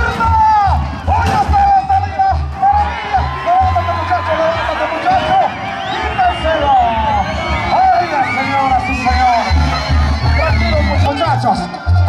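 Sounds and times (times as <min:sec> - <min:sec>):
band music with gliding melody: 0:00.0 - 0:12.0
crowd noise: 0:00.0 - 0:12.0
tuba-like bass line: 0:09.0 - 0:12.0.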